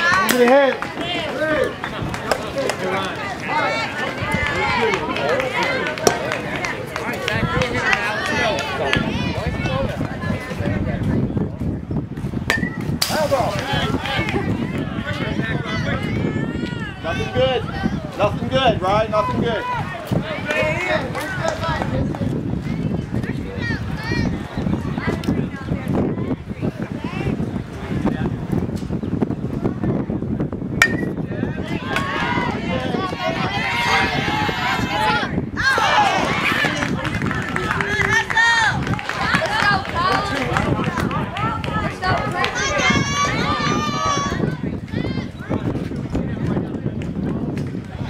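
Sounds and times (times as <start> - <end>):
people shouting and cheering: 0.0 - 11.6, 12.6 - 27.9, 30.8 - 48.0
metal bat hitting ball: 12.5 - 13.5, 30.8 - 31.2
people shouting: 31.7 - 36.8.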